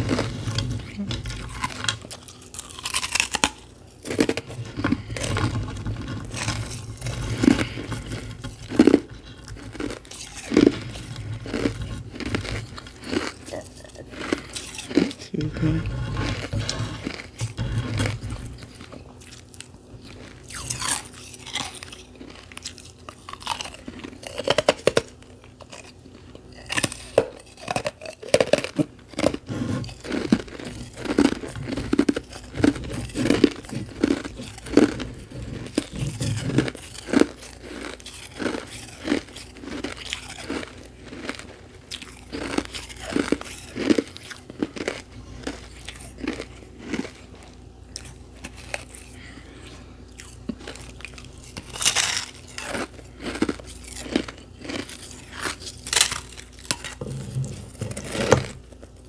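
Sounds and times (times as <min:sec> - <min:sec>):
person chewing crunchy ice: 0:00.0 - 0:59.0.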